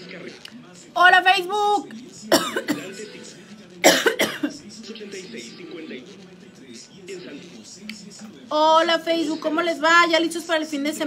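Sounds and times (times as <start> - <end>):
woman coughing: 2.3 - 3.0, 3.8 - 4.6.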